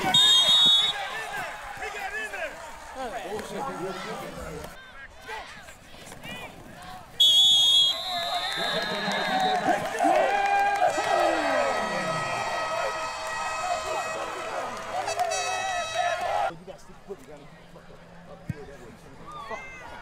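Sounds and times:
referee's whistle blast: 0:00.0 - 0:01.2, 0:07.2 - 0:09.8, 0:12.9 - 0:16.2
crowd shouting and cheering: 0:00.0 - 0:16.5.

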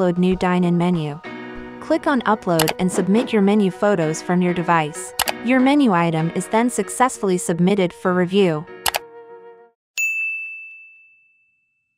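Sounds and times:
background music: 0:00.0 - 0:09.8.

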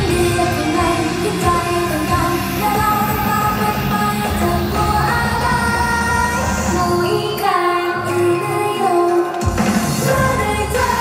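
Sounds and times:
pop backing track: 0:00.0 - 0:11.0
woman singing into a microphone: 0:00.0 - 0:11.0.

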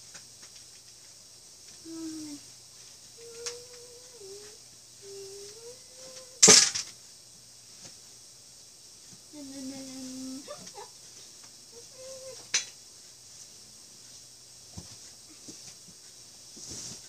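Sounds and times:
person humming: 0:01.8 - 0:02.5, 0:03.2 - 0:06.5, 0:09.3 - 0:10.9, 0:11.7 - 0:12.5.

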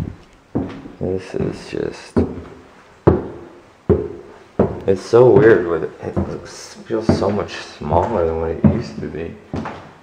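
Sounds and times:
heavy footsteps on bare floor: 0:00.0 - 0:10.0.

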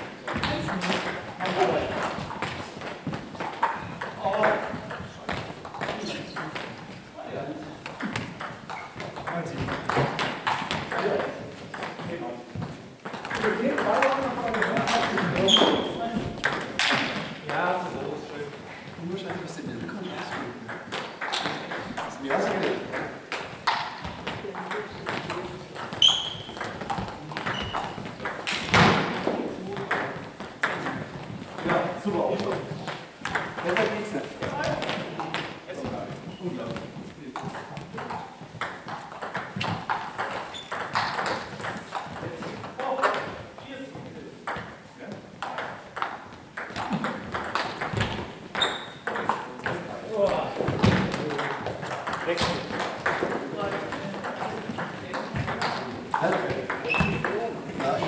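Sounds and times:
table tennis balls clicking: 0:00.2 - 0:07.0, 0:07.8 - 0:17.6, 0:18.5 - 0:35.7, 0:37.3 - 0:43.6, 0:44.5 - 0:58.0.

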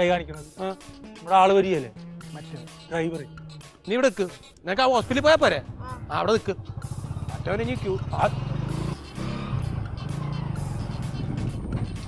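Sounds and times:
small motorcycle engine running: 0:05.0 - 0:11.4.

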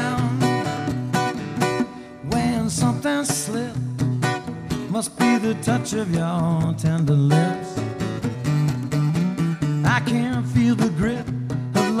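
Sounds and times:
person singing: 0:00.0 - 0:00.8, 0:04.8 - 0:07.9, 0:09.8 - 0:12.0
acoustic guitar strumming: 0:00.0 - 0:12.0.

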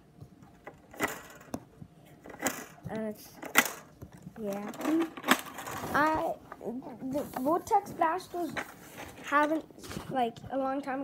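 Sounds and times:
sharp handling clicks and knocks: 0:00.2 - 0:07.8.

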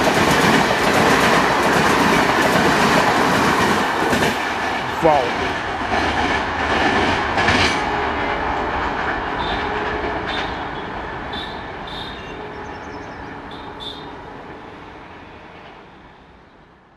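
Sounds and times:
train wheels rolling on rails: 0:00.0 - 0:16.4.

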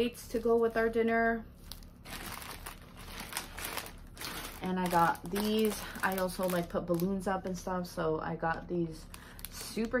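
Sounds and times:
plastic packaging crinkling: 0:00.3 - 0:07.6, 0:08.5 - 0:10.0.

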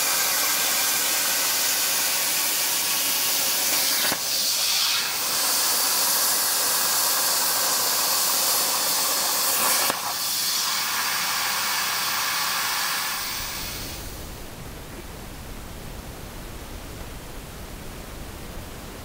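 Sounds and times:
plasma torch hissing: 0:00.0 - 0:14.4.

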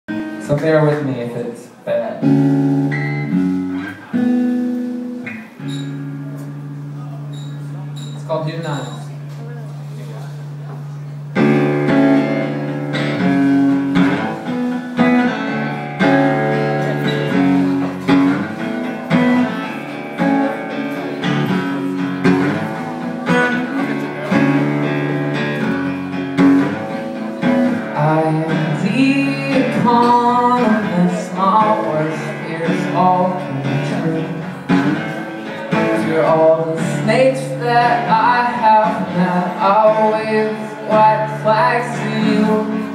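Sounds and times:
acoustic guitar strumming: 0:00.1 - 0:09.3, 0:10.4 - 0:42.9
man singing: 0:27.8 - 0:42.9.

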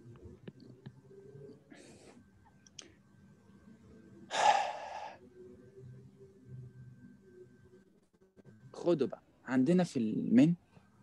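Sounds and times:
man breathing out: 0:04.3 - 0:05.2
man sighing: 0:04.3 - 0:05.2.

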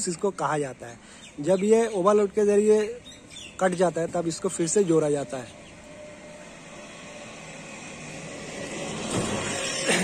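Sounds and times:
passing vehicle: 0:00.0 - 0:10.0.

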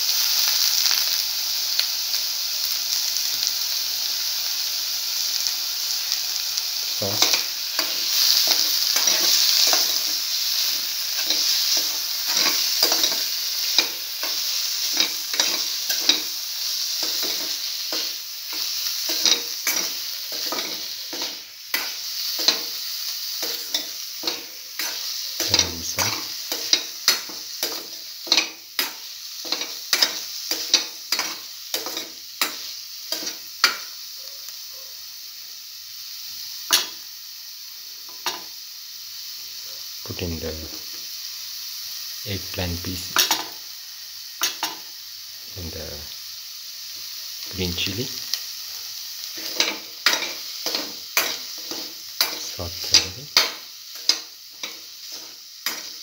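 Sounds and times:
cheese sizzling in oil: 0:00.0 - 0:56.0.

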